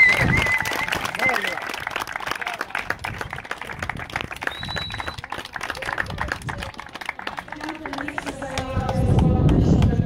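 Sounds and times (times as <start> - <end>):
crowd applauding: 0.0 - 10.0.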